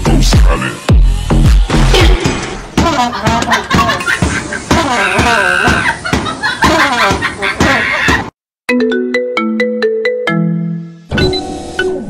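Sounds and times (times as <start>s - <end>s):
music with a beat: 0.0s - 1.8s
ringtone melody: 8.7s - 12.0s.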